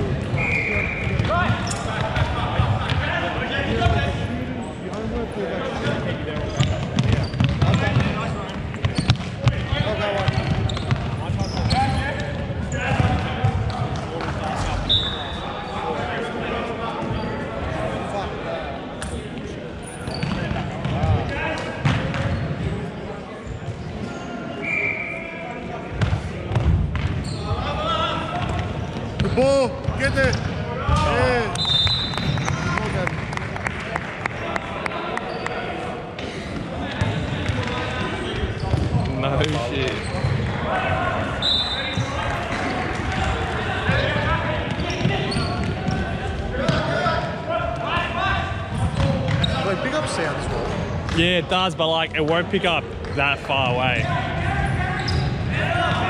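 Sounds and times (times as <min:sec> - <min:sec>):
sneakers squeaking: 0:00.0 - 0:05.1, 0:05.8 - 0:16.1, 0:19.0 - 0:32.9, 0:35.2 - 0:47.0, 0:47.8 - 0:51.2, 0:52.4 - 0:56.0.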